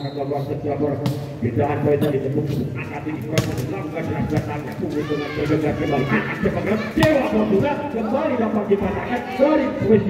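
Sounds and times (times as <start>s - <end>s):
voices of onlookers: 1.8s - 10.0s.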